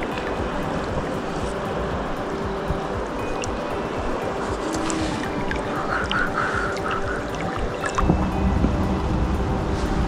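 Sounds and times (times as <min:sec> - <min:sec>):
background music: 0:00.0 - 0:10.0
bird raspy calls: 0:04.6 - 0:08.0.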